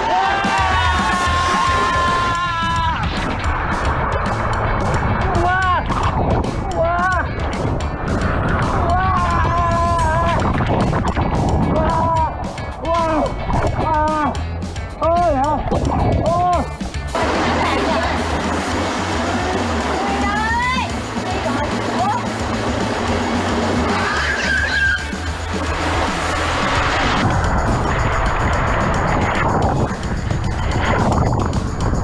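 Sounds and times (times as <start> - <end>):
water rushing down slide: 0.0 - 12.2, 17.1 - 32.0
background music: 0.0 - 32.0.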